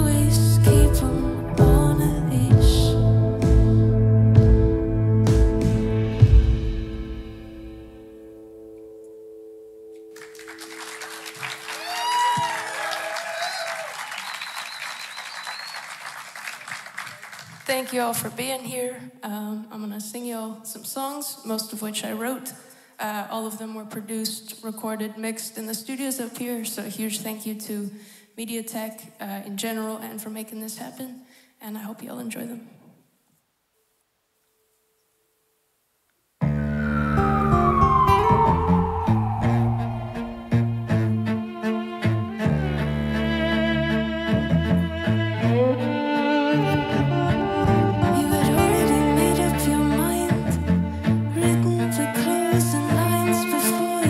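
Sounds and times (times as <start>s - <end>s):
music with gliding chord tone: 7.8s - 11.3s
audience applauding: 10.1s - 17.7s
audience cheering: 10.2s - 17.5s, 36.8s - 41.5s
held sung note: 36.6s - 41.4s.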